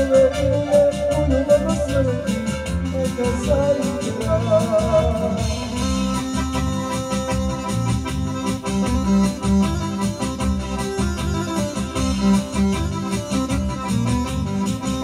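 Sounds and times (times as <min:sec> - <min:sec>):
accordion: 0:00.0 - 0:15.0
beat and bass line: 0:00.0 - 0:15.0
electronic keyboard: 0:00.0 - 0:15.0.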